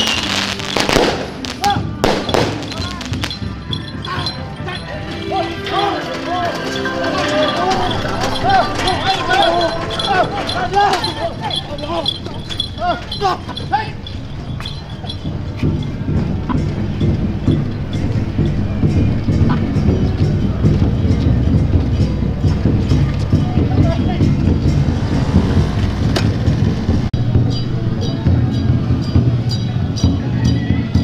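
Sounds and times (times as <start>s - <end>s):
wooden palanquin cart rumbling: 0.0s - 31.0s.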